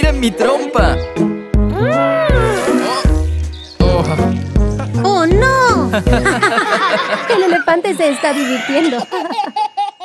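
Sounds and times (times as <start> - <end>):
cartoon characters laughing: 5.9 - 10.0
baby laughing: 6.2 - 10.0.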